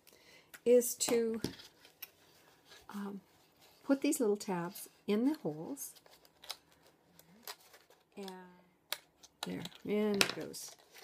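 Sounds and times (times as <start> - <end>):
cardstock clicks and crinkles: 5.4 - 11.0.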